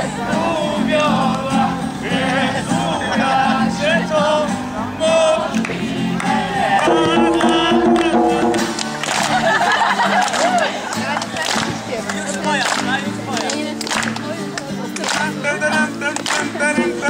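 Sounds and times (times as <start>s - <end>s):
song with singing voices: 0.0s - 8.9s, 15.2s - 17.0s
steady repeating beat: 6.9s - 8.8s.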